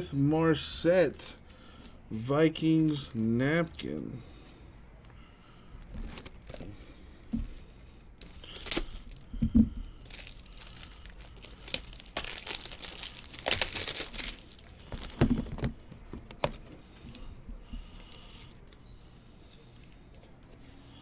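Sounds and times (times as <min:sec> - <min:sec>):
wrapper tearing and crinkling: 0:05.9 - 0:06.7, 0:07.5 - 0:15.7.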